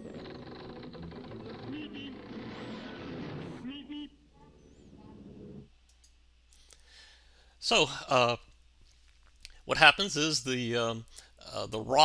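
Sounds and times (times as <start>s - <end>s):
cartoon rushing noise: 0.0s - 5.4s.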